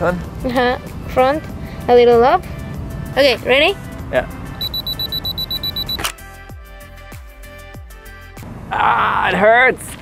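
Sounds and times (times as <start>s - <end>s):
camera self-timer beeping: 4.6s - 6.0s.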